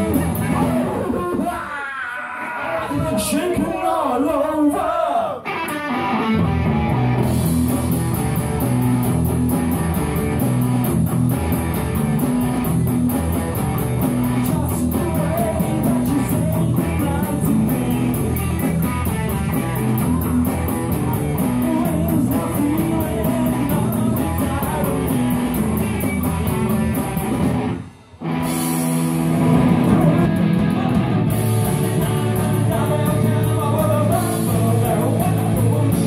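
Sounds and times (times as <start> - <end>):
guitar riff: 0.0 - 1.6, 5.4 - 36.0
rock band playing: 0.0 - 1.8, 5.4 - 36.0.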